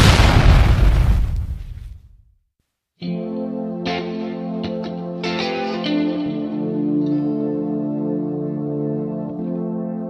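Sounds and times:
loud noisy crash: 0:00.0 - 0:02.2
clean electric guitar with chorus: 0:03.0 - 0:10.0.

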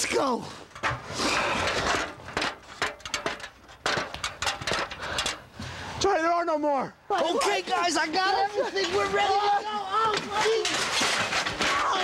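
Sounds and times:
sharp clicks and knocks: 0:01.7 - 0:05.4.

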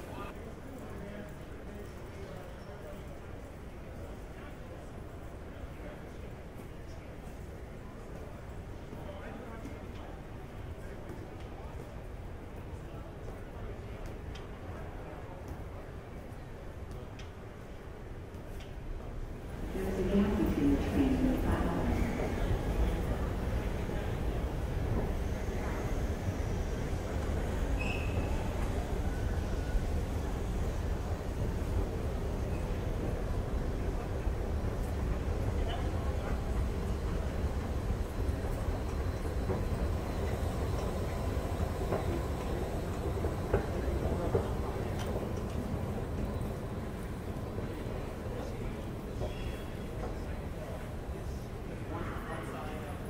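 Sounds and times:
station hall hum: 0:00.0 - 0:53.0
faint voices: 0:19.4 - 0:53.0
high squeak or beep: 0:27.8 - 0:28.2.

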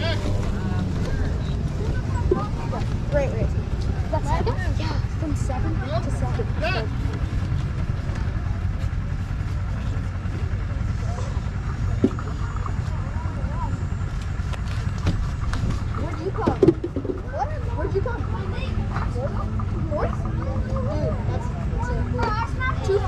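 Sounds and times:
steady low rumble: 0:00.0 - 0:23.0
voices talking: 0:00.0 - 0:23.0.

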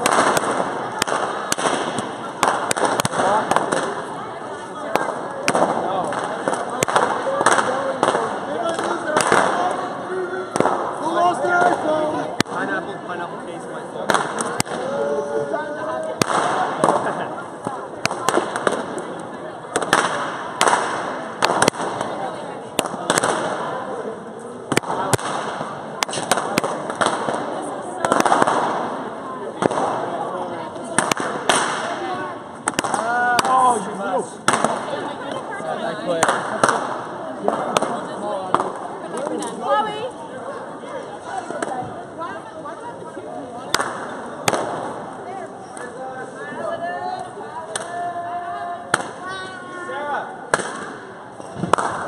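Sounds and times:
crowd of excited voices: 0:00.0 - 0:52.0.

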